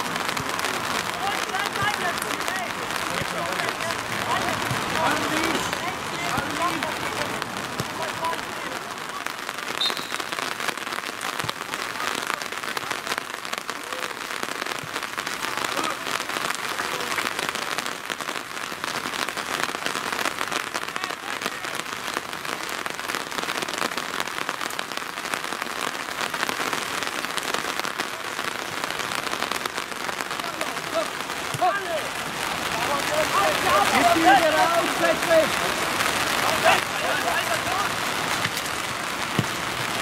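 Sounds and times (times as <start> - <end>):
rain falling steadily: 0.0 - 40.0.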